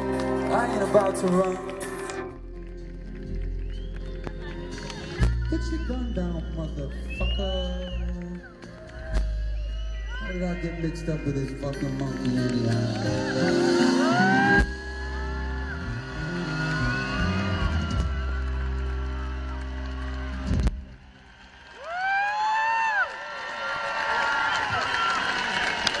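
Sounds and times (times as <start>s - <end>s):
crowd cheering: 0.0s - 2.4s, 3.1s - 26.0s
fans screaming: 4.4s - 8.0s, 12.5s - 20.6s.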